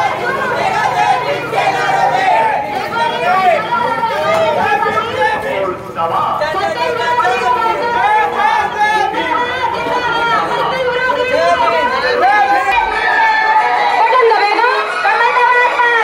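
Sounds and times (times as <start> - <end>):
crowd talking and shouting: 0.0 - 16.0.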